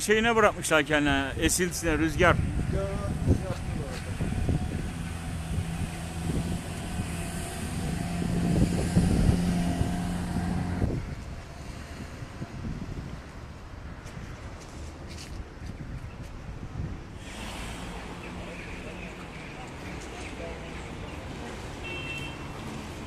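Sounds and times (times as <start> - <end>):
outdoor background noise: 0.0 - 23.0
wind on microphone: 1.7 - 18.2.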